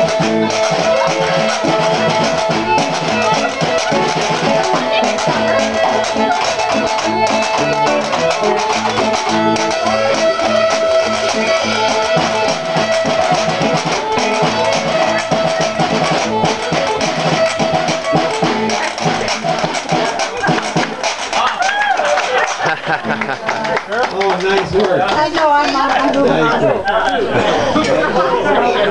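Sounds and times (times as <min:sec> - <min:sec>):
electric guitar: 0:00.0 - 0:20.9
drum kit: 0:00.0 - 0:23.6
fiddle: 0:00.0 - 0:26.5
people laughing: 0:03.0 - 0:08.0, 0:19.2 - 0:28.9.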